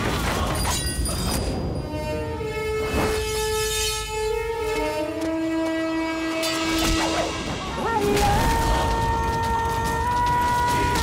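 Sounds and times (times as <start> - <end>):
dramatic orchestral film score: 0.0 - 11.0
held horn-like notes: 1.8 - 7.9.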